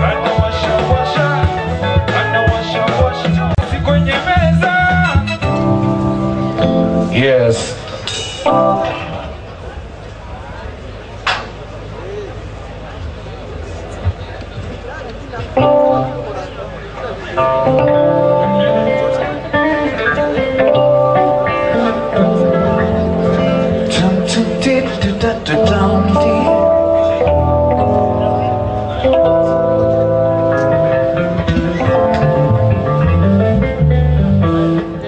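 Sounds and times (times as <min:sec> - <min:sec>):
electric guitar: 0:00.0 - 0:09.6, 0:15.4 - 0:35.0
live band playing: 0:00.0 - 0:09.7, 0:15.4 - 0:35.0
electric bass line: 0:00.0 - 0:09.8, 0:15.6 - 0:16.6, 0:17.2 - 0:35.0.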